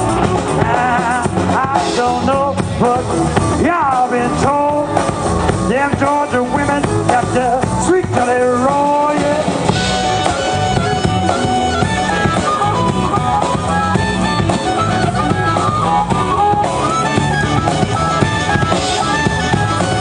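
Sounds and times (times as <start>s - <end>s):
blues band playing: 0.0s - 20.0s
drum kit beat: 0.0s - 20.0s
harmonica melody: 0.0s - 20.0s.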